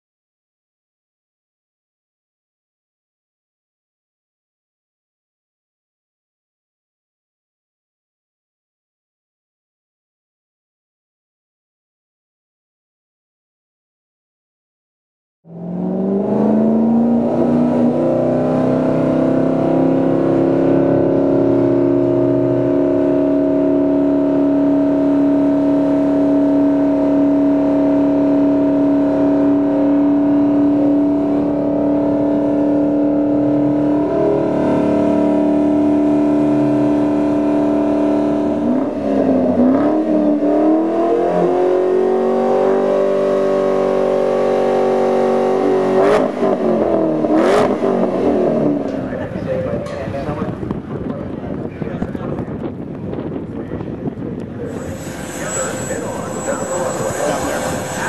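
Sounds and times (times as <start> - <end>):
car engine revving: 15.5 - 49.5, 54.7 - 58.0.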